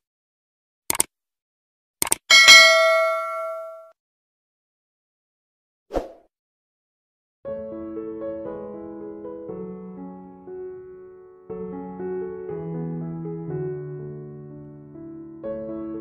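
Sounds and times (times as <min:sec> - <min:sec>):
mouse clicks: 0:02.0 - 0:02.2
notification bell ding: 0:02.3 - 0:03.9
piano music: 0:07.5 - 0:16.0.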